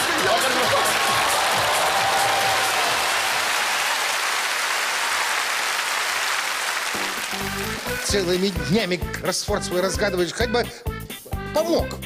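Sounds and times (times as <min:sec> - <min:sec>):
studio audience applauding: 0:00.0 - 0:09.5.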